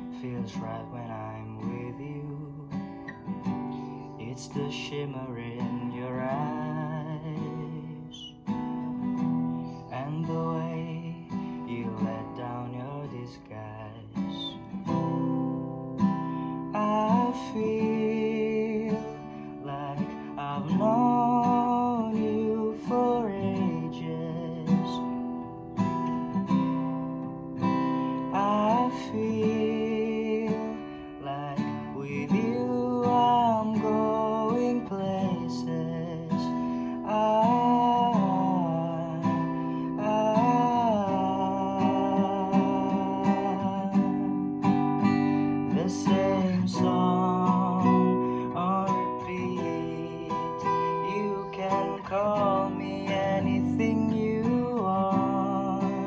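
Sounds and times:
man singing: 0:00.0 - 0:08.5, 0:09.6 - 0:25.5, 0:28.1 - 0:56.0
acoustic guitar strummed chords: 0:00.0 - 0:56.0.

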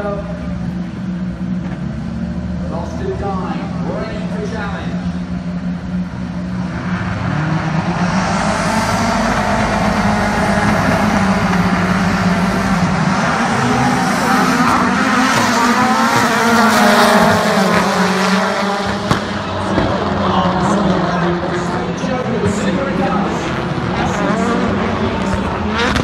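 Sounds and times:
race car engines revving: 0:00.0 - 0:26.0.

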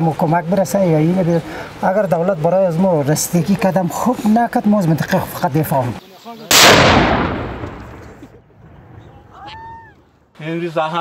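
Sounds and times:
loud shell explosion: 0:06.5 - 0:08.2.

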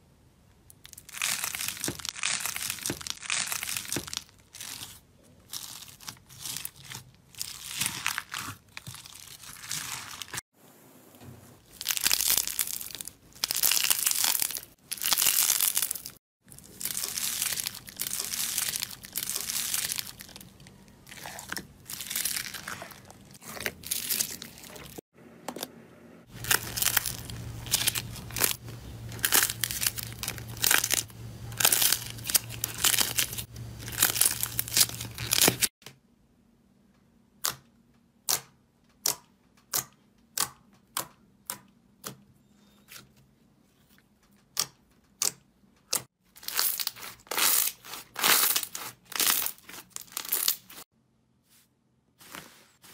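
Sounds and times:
slime crackling and crunching: 0:00.9 - 0:10.4, 0:11.7 - 0:25.0, 0:26.3 - 0:35.7, 0:46.3 - 0:50.9
steady low hum: 0:25.2 - 0:34.7.

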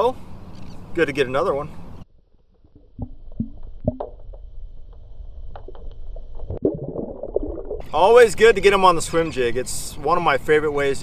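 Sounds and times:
underwater low rumble: 0:02.1 - 0:08.7
bubbling gurgles: 0:02.5 - 0:04.3, 0:05.5 - 0:08.5.

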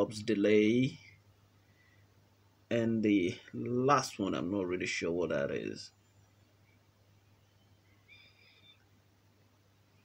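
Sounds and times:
faint low transformer hum: 0:00.0 - 0:10.0.

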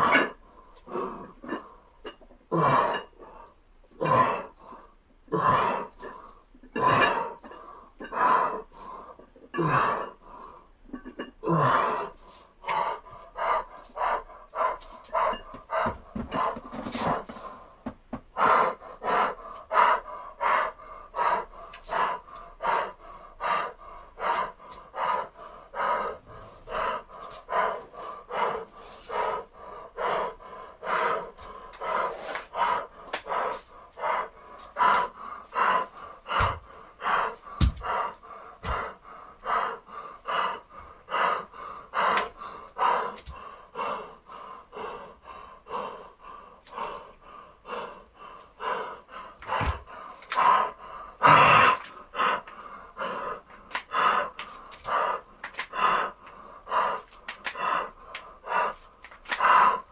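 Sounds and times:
man breathing hard: 0:00.0 - 0:59.9.

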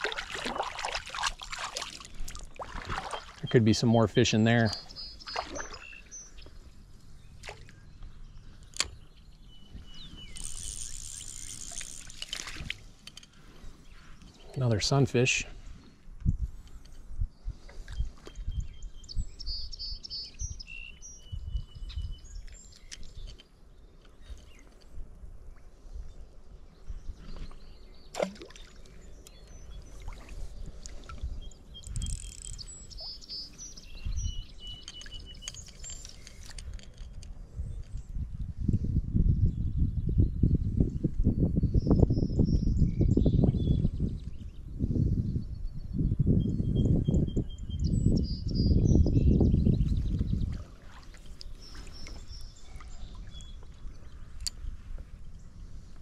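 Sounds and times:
songbirds chirping: 0:00.0 - 0:56.0
low rumble on microphone: 0:37.6 - 0:50.8.

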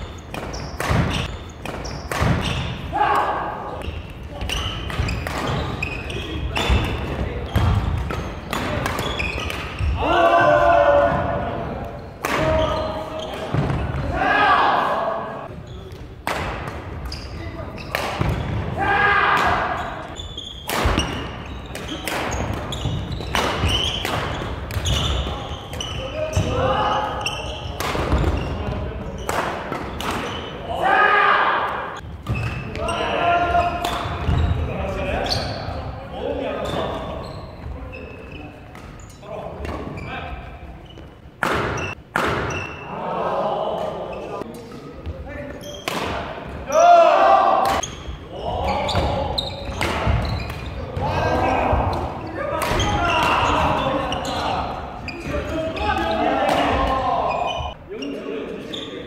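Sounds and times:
racket hitting shuttlecock: 0:00.3 - 0:05.9, 0:06.6 - 0:09.8, 0:16.2 - 0:17.1, 0:17.9 - 0:18.6, 0:20.6 - 0:25.1, 0:27.8 - 0:28.4, 0:41.4 - 0:42.8, 0:45.8 - 0:46.3, 0:48.9 - 0:50.8.

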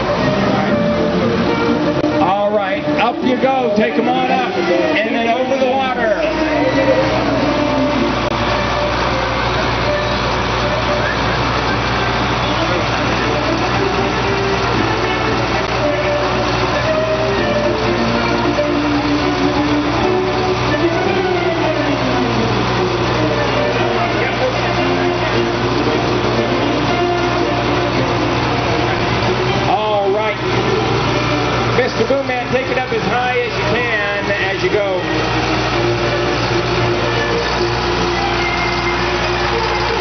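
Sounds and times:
truck engine running: 0:00.0 - 0:40.0.

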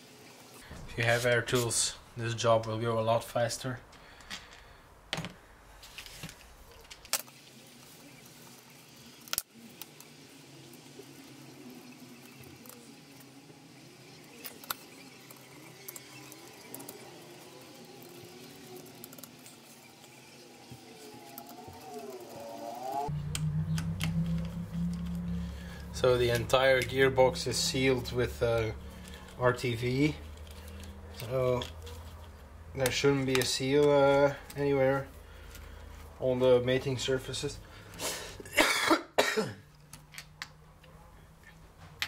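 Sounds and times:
steady low hum: 0:10.4 - 0:33.2.

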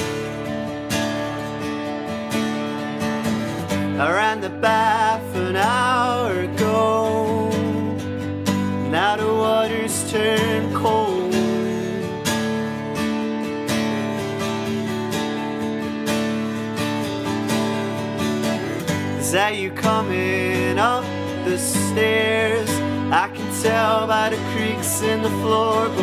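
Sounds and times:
electric guitar: 0:00.0 - 0:26.0
strummed acoustic guitar: 0:00.0 - 0:26.0
person singing: 0:03.9 - 0:12.6, 0:18.5 - 0:26.0.

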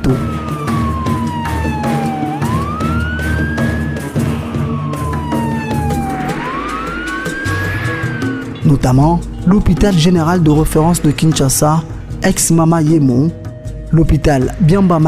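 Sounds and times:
ambulance siren wailing: 0:00.0 - 0:12.6
background music: 0:00.0 - 0:15.0.

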